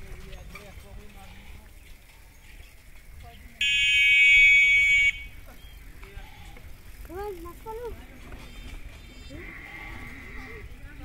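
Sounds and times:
loud steady buzzing tone: 3.6s - 5.4s.

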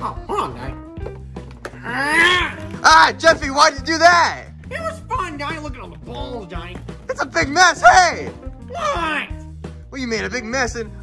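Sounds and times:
background music: 0.0s - 11.0s
person crying out high-pitched: 1.8s - 2.6s, 8.7s - 9.4s
person shouting: 1.8s - 3.2s, 7.4s - 9.4s.

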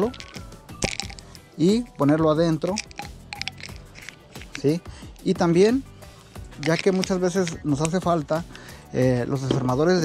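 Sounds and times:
faint background music: 0.0s - 10.0s
screwdriver clicks and rustles: 2.7s - 4.7s, 6.6s - 8.0s.

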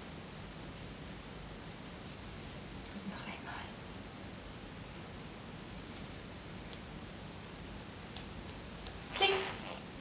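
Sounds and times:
faint hiss: 0.0s - 10.0s
woman whispering: 2.9s - 3.8s.

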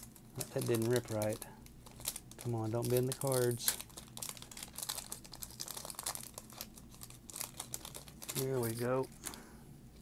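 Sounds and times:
foil wrapper crinkling and tearing: 0.0s - 9.4s.

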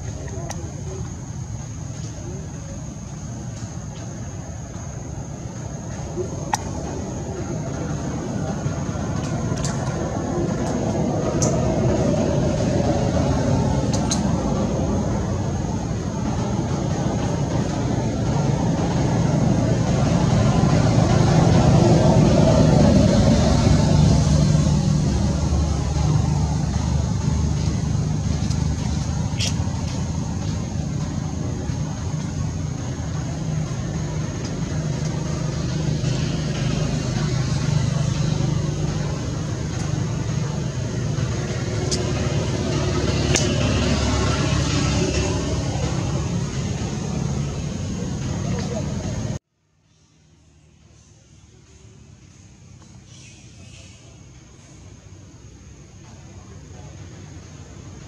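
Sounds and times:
road traffic rumble: 0.0s - 58.0s.

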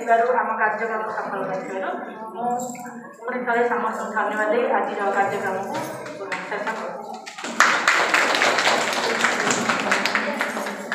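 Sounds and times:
audience applauding: 7.2s - 10.9s.

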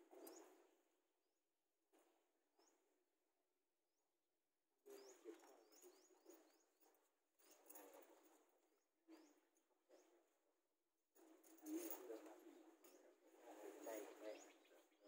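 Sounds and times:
faint bird chirps: 4.8s - 7.8s, 12.0s - 15.0s.

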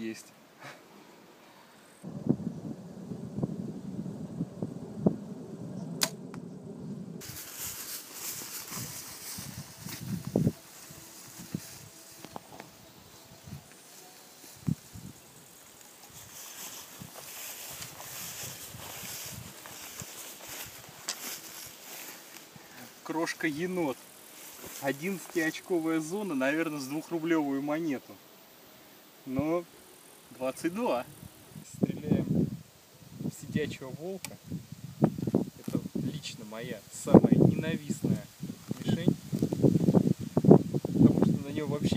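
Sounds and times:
insects hissing: 0.0s - 41.9s
bow string snap: 5.9s - 6.5s
footsteps through tall grass: 7.2s - 26.4s.

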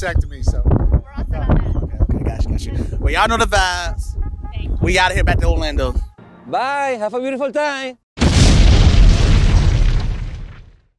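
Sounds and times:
explosion boom with deep rumble: 8.2s - 10.9s.

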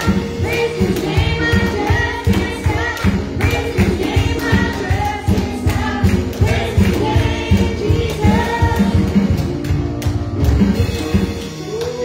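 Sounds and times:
girl and woman singing gospel: 0.0s - 9.2s
instrumental accompaniment with beat: 0.0s - 12.0s.

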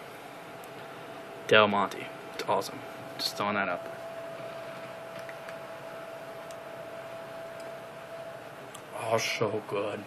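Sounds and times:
faint constant hum: 0.0s - 10.0s.

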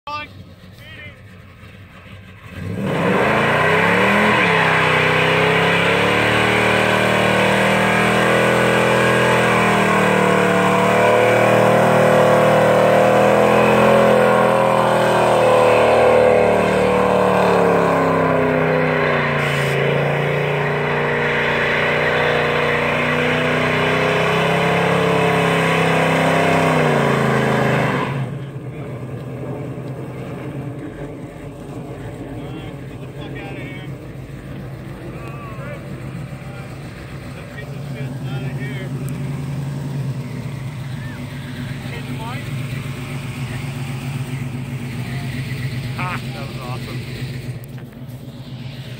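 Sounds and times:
engine revving: 0.1s - 48.9s
tyres spinning on asphalt: 0.1s - 48.9s.

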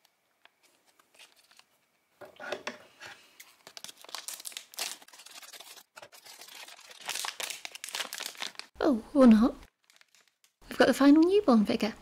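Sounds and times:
plastic packaging crackling: 3.4s - 8.8s, 9.6s - 11.3s.

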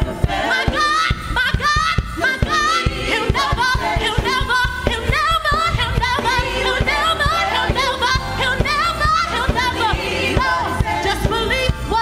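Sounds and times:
choir singing gospel: 0.0s - 12.0s
music with steady beat: 0.0s - 12.0s.

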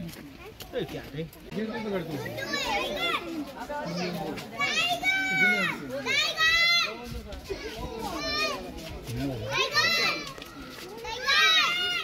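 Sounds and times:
background chatter: 0.0s - 12.0s
children calling out: 2.3s - 7.0s, 7.6s - 8.8s, 9.4s - 12.0s.

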